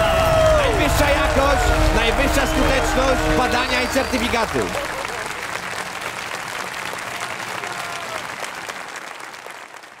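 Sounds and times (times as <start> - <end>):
large audience applauding: 0.0 - 10.0.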